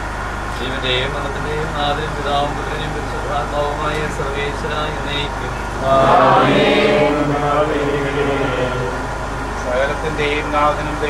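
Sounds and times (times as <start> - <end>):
steady low hum: 0.0 - 11.0
voices chanting a prayer: 0.6 - 11.0.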